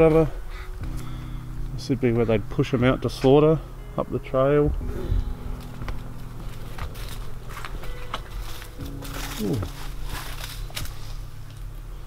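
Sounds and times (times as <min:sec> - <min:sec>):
footsteps through dry grass: 0:05.2 - 0:11.8.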